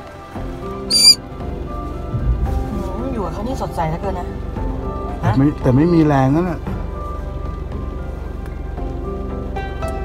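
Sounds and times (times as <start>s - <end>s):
background music: 0.0s - 10.0s
parrot squawk: 0.9s - 1.2s.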